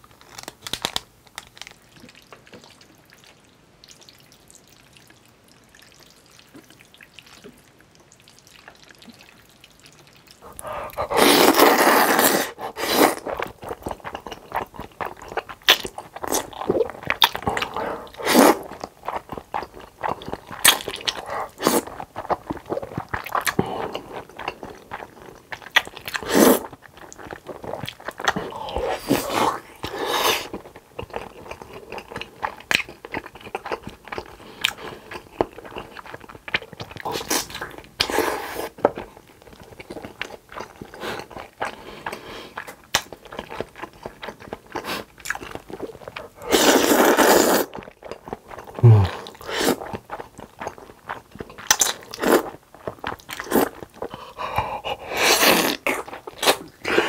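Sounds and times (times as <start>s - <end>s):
wet chewing: 5.8s - 57.0s
slurping noodles: 10.4s - 14.0s, 16.2s - 19.2s, 20.6s - 24.2s, 26.1s - 26.7s, 27.6s - 30.6s, 37.0s - 38.8s, 45.8s - 47.9s, 48.6s - 50.1s, 53.4s - 57.0s.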